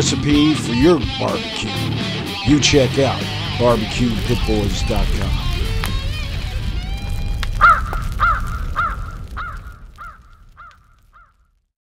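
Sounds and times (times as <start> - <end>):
guitar music: 0.0 - 8.6
crow cawing: 7.5 - 11.5.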